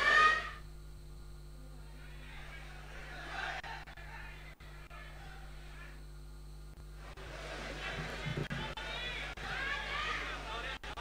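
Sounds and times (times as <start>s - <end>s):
faint low hum: 0.0s - 11.0s
voices in a large hall: 1.4s - 11.0s.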